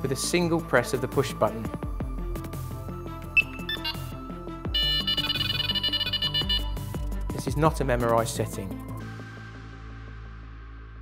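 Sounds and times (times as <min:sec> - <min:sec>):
background music: 0:00.0 - 0:11.0
bite alarm beeping: 0:03.4 - 0:06.9
rapid pulsing high tone: 0:04.8 - 0:06.8.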